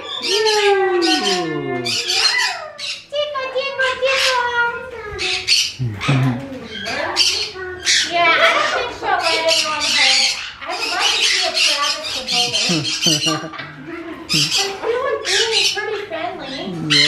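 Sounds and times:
macaws squawking: 0:00.0 - 0:03.1, 0:05.3 - 0:17.0.

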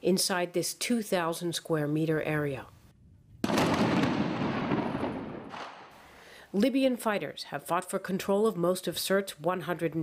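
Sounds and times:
echoing explosion blast: 0:03.0 - 0:06.0.

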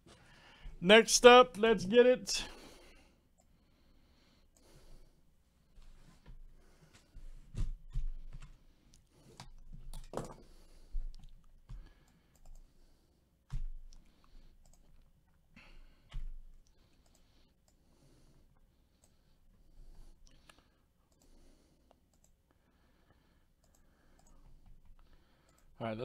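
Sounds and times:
faint taps and handling at desk: 0:09.3 - 0:11.9.

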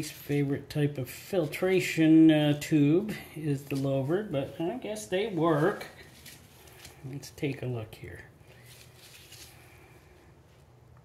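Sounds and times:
low room hum: 0:00.0 - 0:11.0
paper filter element rustling: 0:03.5 - 0:07.2, 0:08.4 - 0:10.1.

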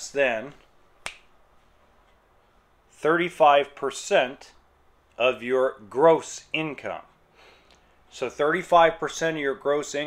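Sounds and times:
finger snap: 0:01.0 - 0:01.4.

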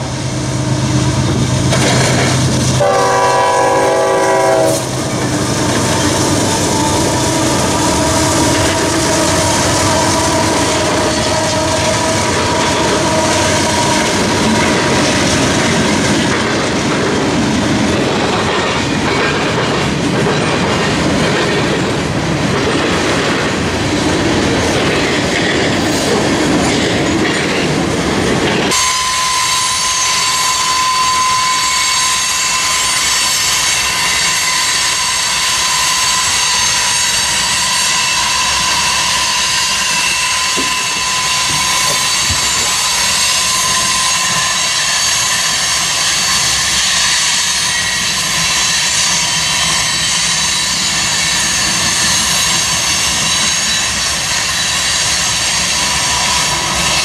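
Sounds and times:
freight train rumbling past: 0:00.0 - 0:57.0
wheels clacking over rail joints: 0:01.2 - 0:28.8, 0:37.2 - 0:57.0
train horn blast: 0:02.8 - 0:05.0, 0:28.7 - 0:33.0
high wheel squeal: 0:02.8 - 0:14.9, 0:28.7 - 0:57.0.

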